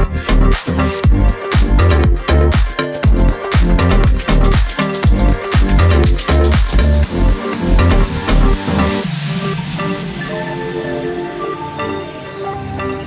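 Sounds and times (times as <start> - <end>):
electronic kick beat: 0.0 - 10.0
synth melody: 0.0 - 13.0
sweep effect: 1.8 - 13.0.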